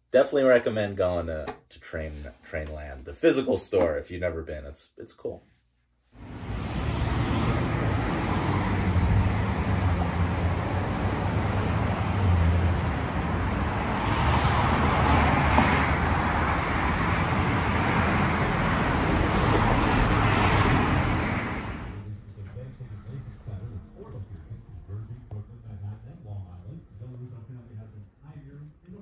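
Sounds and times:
street traffic rumble: 6.2 - 29.0.

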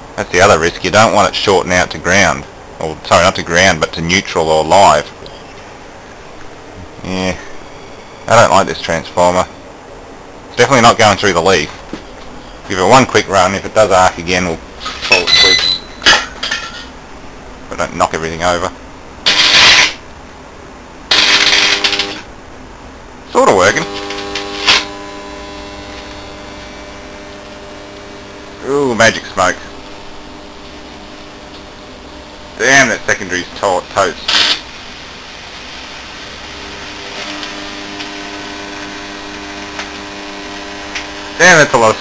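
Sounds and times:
steady buzzing hum: 0.0 - 42.0
steady hiss: 0.0 - 42.0
loud electrical crackle: 12.9 - 16.9, 19.2 - 20.2, 21.0 - 22.3, 23.3 - 42.0.

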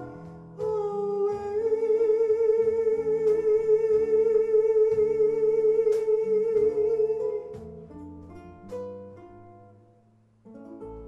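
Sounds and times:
bass and guitar: 0.0 - 11.0.

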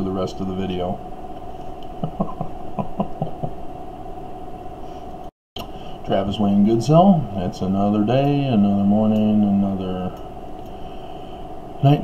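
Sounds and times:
steady electrical hum: 0.0 - 12.0
man chuckling quietly: 1.9 - 3.7.

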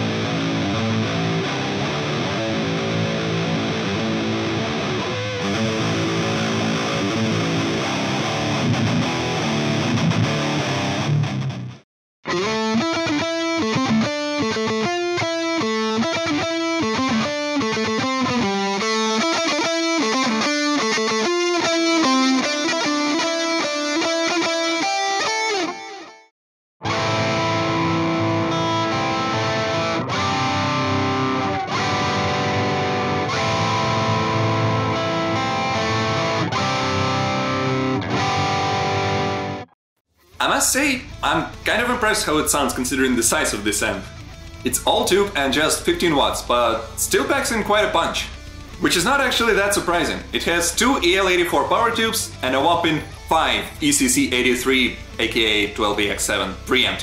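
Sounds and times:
distorted electric guitar: 0.0 - 26.2, 26.8 - 57.0.

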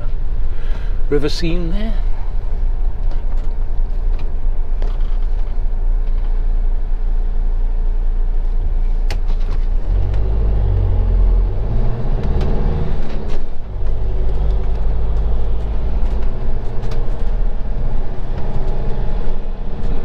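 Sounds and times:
van engine idling and accelerating: 0.0 - 20.0.

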